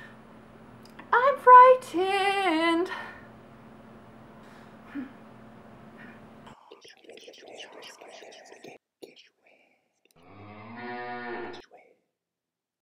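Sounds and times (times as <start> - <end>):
hushed whispering: 6.5 - 10.0, 11.6 - 12.0
long low moo: 10.2 - 11.6.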